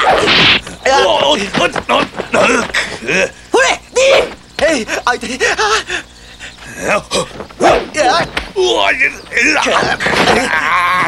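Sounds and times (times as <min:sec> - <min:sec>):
whip crack: 0:00.0 - 0:00.7
fighters yelping: 0:00.0 - 0:11.0.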